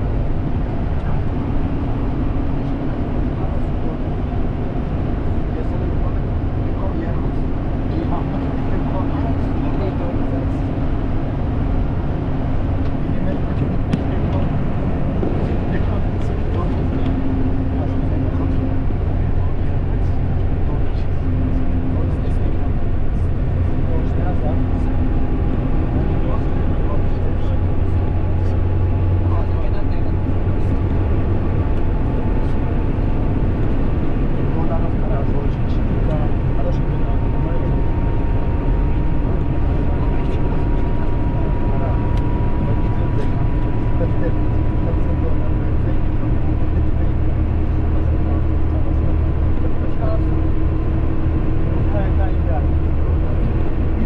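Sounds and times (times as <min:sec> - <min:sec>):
car road noise at highway speed: 0:00.0 - 0:54.0.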